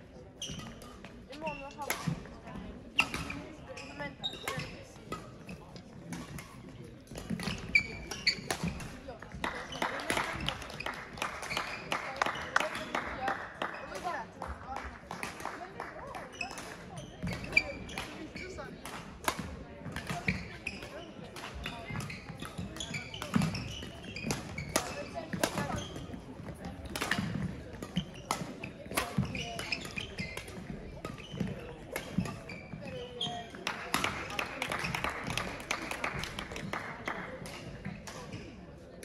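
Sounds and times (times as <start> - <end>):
racket striking shuttlecock: 6.1 - 9.0, 21.4 - 26.0, 26.9 - 33.2.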